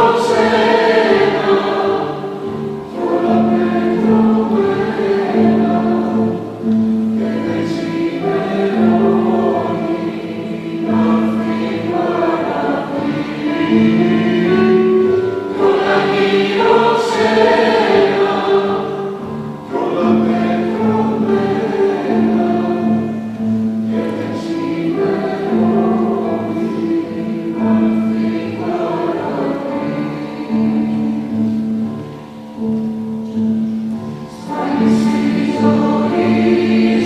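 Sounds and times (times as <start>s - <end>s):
mixed choir singing: 0.0s - 37.0s.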